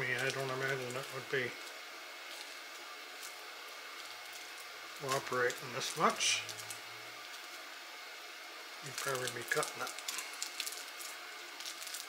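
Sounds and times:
sticky tape peeling: 0:00.0 - 0:07.7, 0:08.8 - 0:12.0
low room tone hiss: 0:00.0 - 0:12.0.

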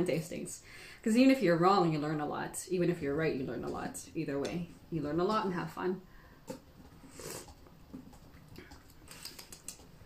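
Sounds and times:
slurp of tea: 0:07.0 - 0:07.6.

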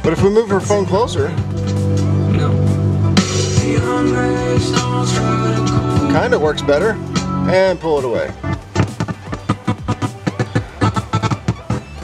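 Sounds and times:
music with drums from car radio: 0:00.0 - 0:12.0.

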